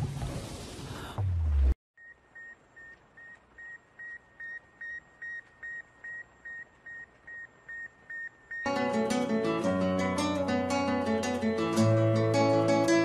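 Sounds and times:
short electronic beeps: 0:02.0 - 0:08.7.

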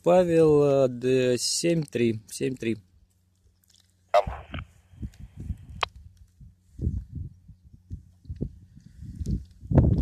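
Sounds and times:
radio static burst: 0:04.1 - 0:04.8.

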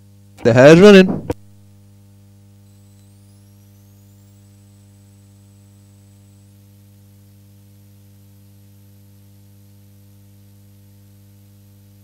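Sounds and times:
electrical mains hum: 0:00.0 - 0:12.0
faint high-pitched whine: 0:00.0 - 0:12.0.

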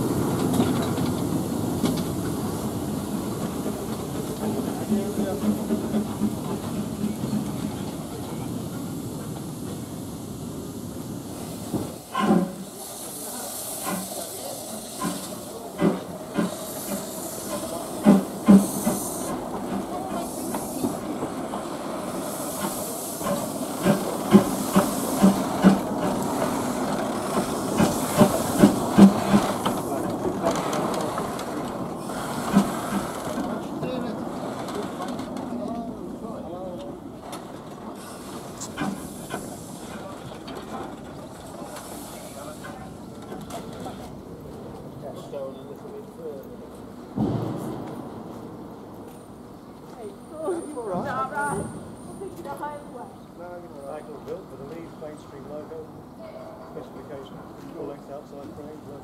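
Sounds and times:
steam hissing: 0:00.0 - 0:35.1, 0:37.6 - 0:44.0
locomotive rumble: 0:00.0 - 0:50.7.

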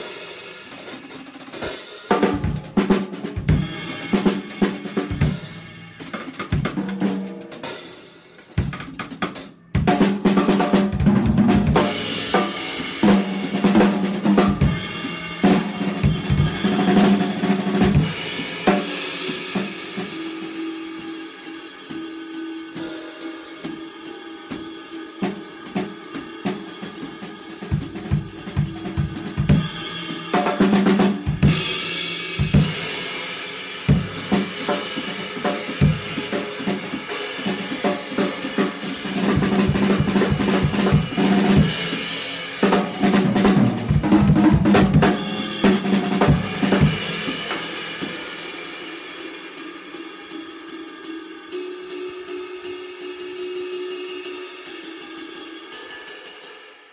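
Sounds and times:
drum kit playing: 0:00.0 - 0:56.4.

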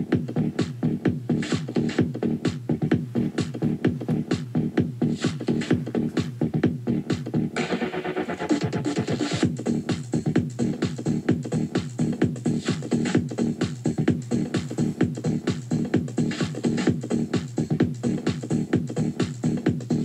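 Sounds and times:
song with fast steady beat: 0:00.0 - 0:20.0.

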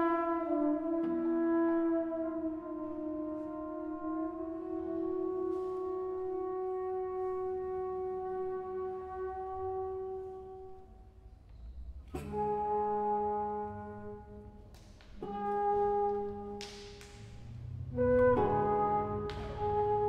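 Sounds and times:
trombone: 0:00.0 - 0:10.8, 0:12.1 - 0:14.6, 0:15.2 - 0:20.0
alto flute: 0:00.0 - 0:11.0, 0:12.2 - 0:20.0
classical guitar: 0:12.1 - 0:20.0.

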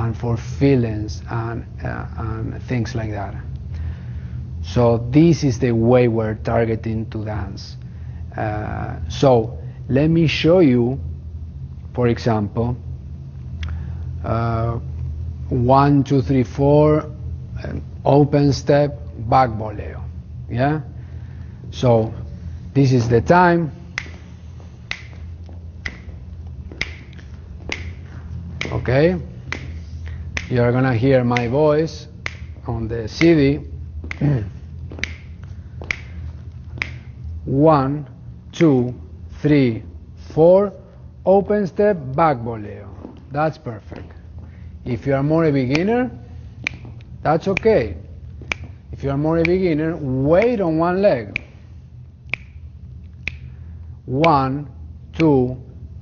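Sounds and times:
steady low hum: 0:00.0 - 0:56.0
finger snaps: 0:13.6 - 0:13.9, 0:23.9 - 0:30.7, 0:31.3 - 0:37.4, 0:45.7 - 0:45.9, 0:46.6 - 0:49.8, 0:50.4 - 0:50.6, 0:51.2 - 0:54.4
metronome clicks: 0:25.8 - 0:26.1.

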